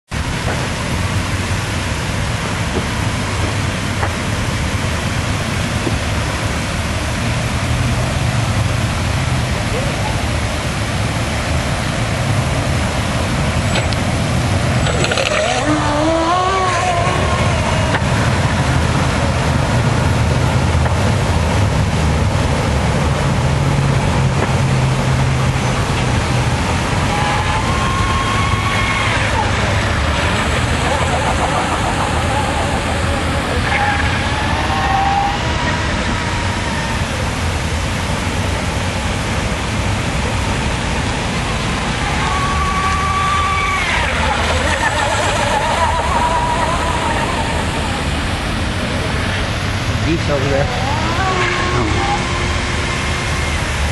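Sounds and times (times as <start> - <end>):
model boat motor droning: 0.3 - 53.9.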